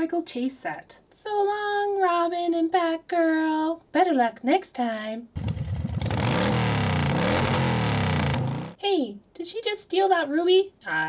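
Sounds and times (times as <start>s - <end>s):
motorcycle engine revving: 5.4s - 8.8s.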